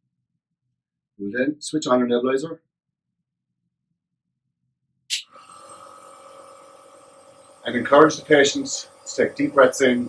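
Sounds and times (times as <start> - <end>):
air compressor humming: 5.1 - 10.0.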